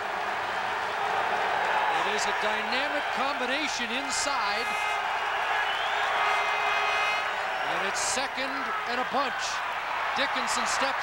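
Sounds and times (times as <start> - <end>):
stadium crowd din: 0.0 - 11.0.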